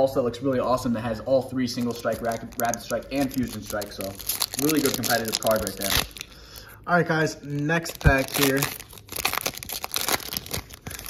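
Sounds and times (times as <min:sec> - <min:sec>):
foil wrapper crinkling and tearing: 0:01.6 - 0:06.7, 0:07.4 - 0:11.0.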